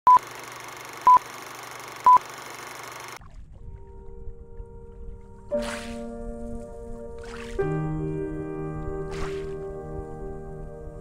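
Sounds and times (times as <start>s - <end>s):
faint sustained music tones: 3.3s - 11.0s.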